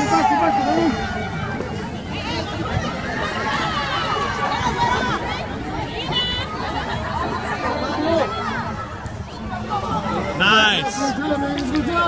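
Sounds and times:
drawn-out shout: 0.0s - 8.8s
spectators talking: 0.0s - 12.0s.

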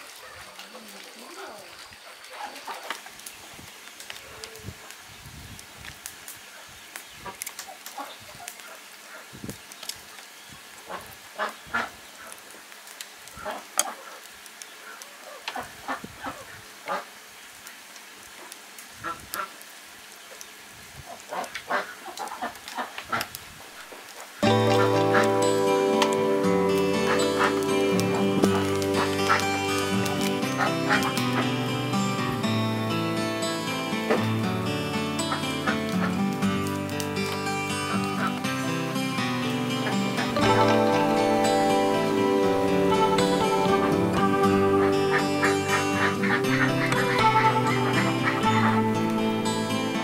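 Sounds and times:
leaves rustling: 0.0s - 50.0s
instrumental music with plucked notes: 24.4s - 50.0s.

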